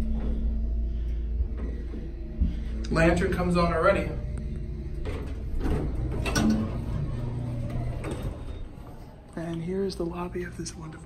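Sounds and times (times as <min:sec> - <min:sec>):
elevator door motor rumble: 0:00.0 - 0:11.0
mechanical clunks: 0:04.2 - 0:09.2.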